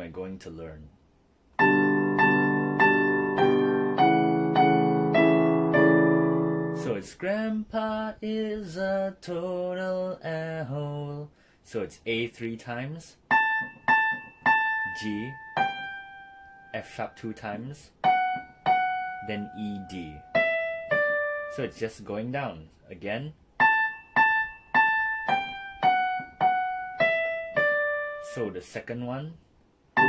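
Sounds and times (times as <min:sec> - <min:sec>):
digital piano note: 0:01.6 - 0:07.0, 0:13.3 - 0:17.1, 0:23.6 - 0:28.4.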